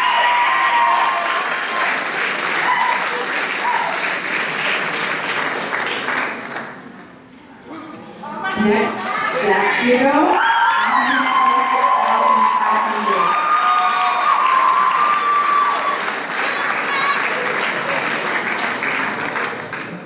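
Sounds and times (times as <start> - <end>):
people whooping and shouting: 0.0 - 2.0, 2.6 - 4.1, 9.0 - 17.4
audience applauding: 0.0 - 6.9, 10.1 - 20.0.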